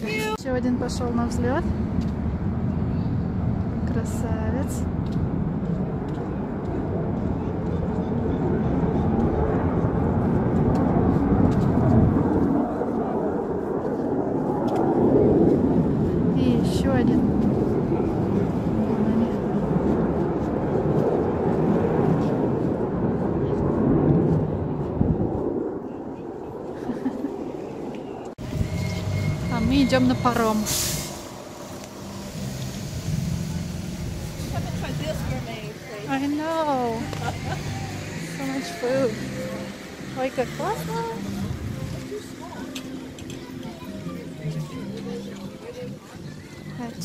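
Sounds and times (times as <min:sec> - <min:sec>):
fighter jet taking off: 0:04.6 - 0:43.5.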